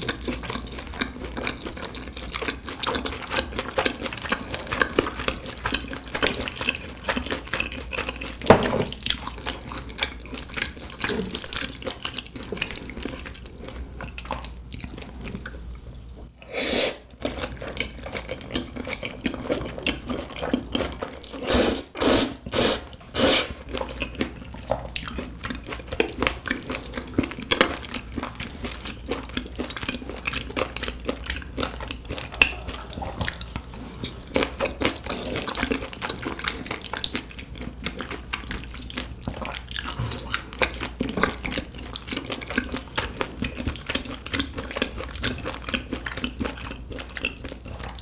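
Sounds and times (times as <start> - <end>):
person chewing wetly: 0.0 - 48.0.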